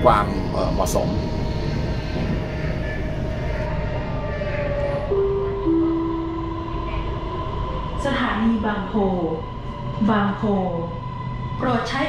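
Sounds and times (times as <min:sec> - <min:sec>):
train rumble with electric whine: 0:00.0 - 0:12.0.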